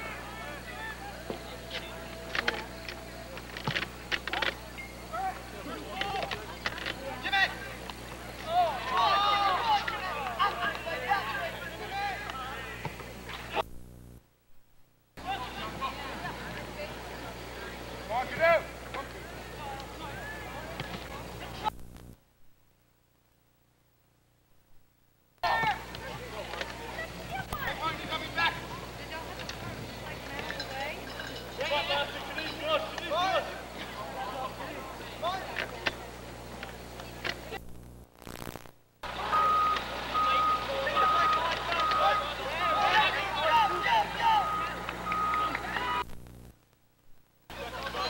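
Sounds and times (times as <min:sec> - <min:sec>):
voices talking: 0:00.0 - 0:13.7, 0:15.2 - 0:22.1, 0:25.4 - 0:37.7, 0:39.0 - 0:46.1, 0:47.5 - 0:48.0
faint distant voices: 0:15.2 - 0:21.7, 0:25.4 - 0:37.6
electronic beep: 0:39.3 - 0:42.3, 0:44.3 - 0:46.0.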